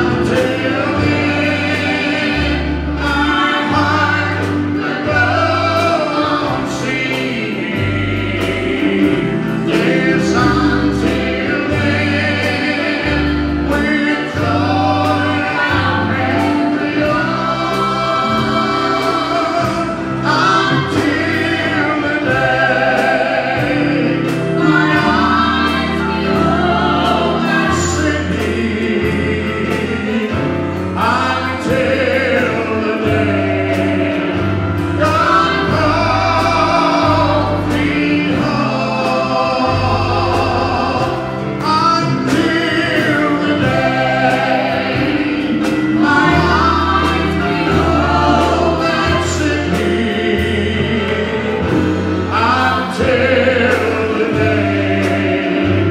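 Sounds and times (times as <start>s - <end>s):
drum kit with cymbals: 0.0s - 55.9s
electric bass: 0.0s - 55.9s
keyboard: 0.0s - 55.9s
singers in harmony: 0.0s - 55.9s.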